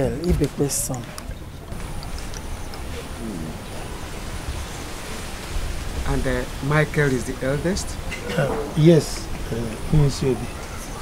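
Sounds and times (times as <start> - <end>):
even hiss: 0.0 - 11.0
faint voice: 3.2 - 3.6.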